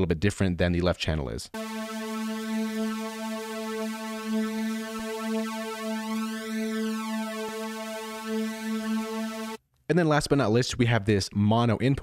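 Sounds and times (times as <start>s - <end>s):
synthesizer note with flanger sweep: 1.6s - 9.6s.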